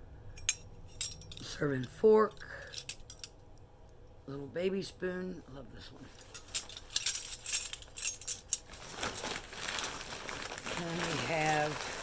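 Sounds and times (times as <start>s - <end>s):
metal flatware clinking: 0.4s - 1.5s
wrapping rustling: 6.2s - 12.0s.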